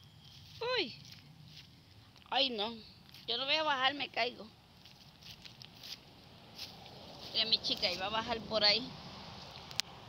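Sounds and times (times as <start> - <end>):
flip-flop footsteps on dirt: 0.0 - 2.4, 4.7 - 8.2.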